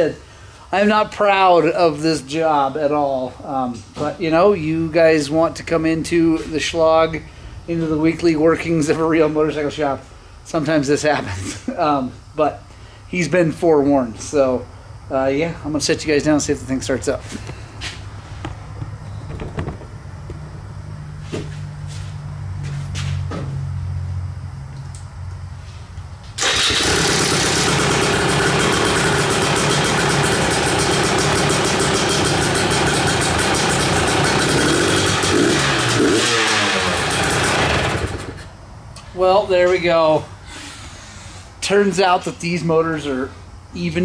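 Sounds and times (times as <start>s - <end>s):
dirt bike engine turning over: 18.5s - 20.6s, 26.4s - 38.5s
dirt bike engine running loud: 26.5s - 38.5s.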